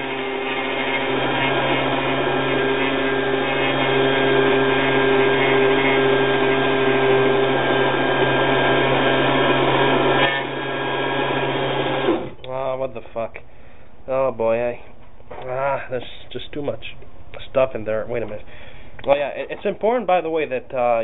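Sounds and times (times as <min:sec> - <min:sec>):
electric blender running: 0:00.0 - 0:12.4.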